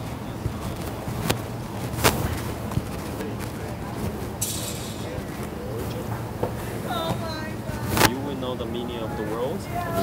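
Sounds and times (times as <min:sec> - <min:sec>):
outdoor background noise: 0:00.0 - 0:10.0
voices: 0:00.0 - 0:10.0.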